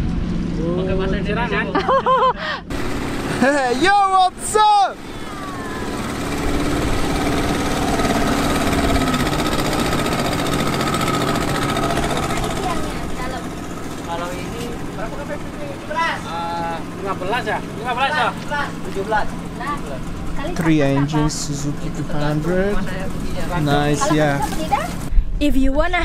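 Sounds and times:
outboard motor droning: 0.0s - 25.1s
voices: 3.3s - 26.0s.

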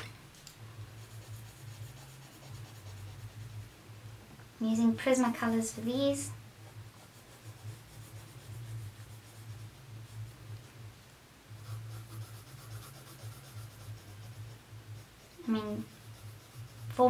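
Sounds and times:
low steady hum: 0.0s - 17.0s
pencil scratching on paper: 1.0s - 3.7s, 6.6s - 10.7s, 11.5s - 17.0s.

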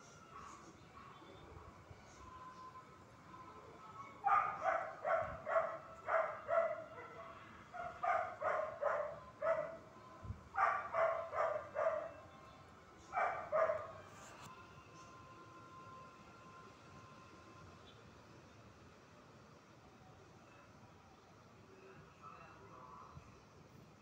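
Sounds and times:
dog barking: 4.2s - 9.8s, 10.6s - 12.2s, 13.1s - 14.0s.

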